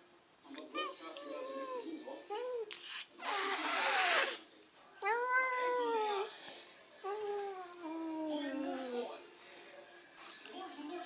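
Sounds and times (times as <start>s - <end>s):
cat meowing: 5.0s - 6.3s.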